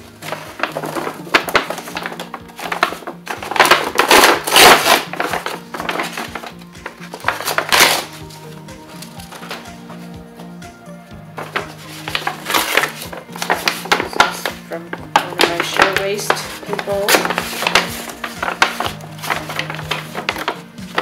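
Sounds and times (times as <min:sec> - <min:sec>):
paper bag crackling: 0:00.0 - 0:10.3, 0:11.3 - 0:21.0
background music: 0:00.0 - 0:21.0.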